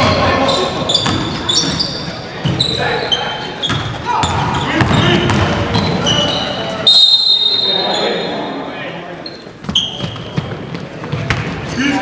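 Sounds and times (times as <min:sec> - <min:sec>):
sneaker squeaks: 0:00.0 - 0:08.6, 0:09.2 - 0:11.7
players' voices echoing: 0:00.0 - 0:12.0
referee's whistle blast: 0:06.8 - 0:08.3.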